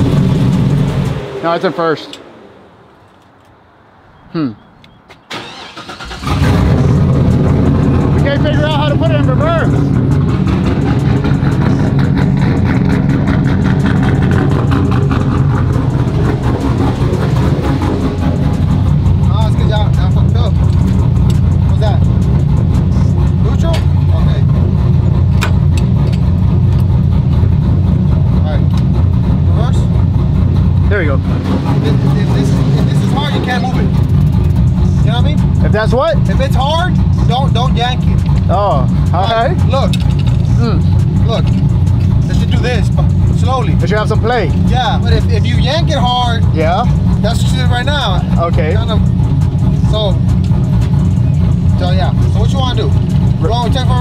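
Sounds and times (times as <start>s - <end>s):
pickup engine idling: 0.0s - 3.1s, 5.3s - 54.0s
voices: 1.2s - 2.8s, 4.2s - 12.4s, 15.6s - 24.6s, 30.8s - 54.0s.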